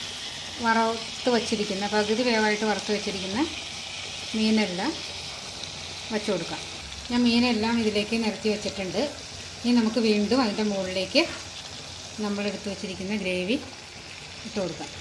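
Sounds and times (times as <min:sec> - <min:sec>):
fish sizzling in a pan: 0:00.0 - 0:15.0.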